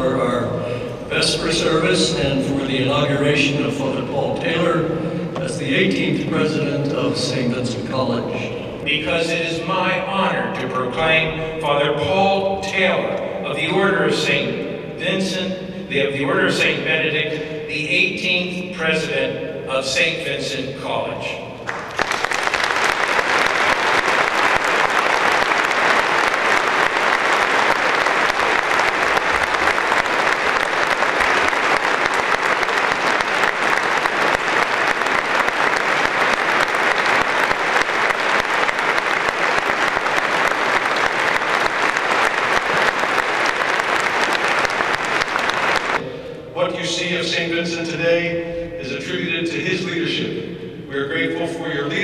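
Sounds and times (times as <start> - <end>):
audience applause: 21.7 - 46.0.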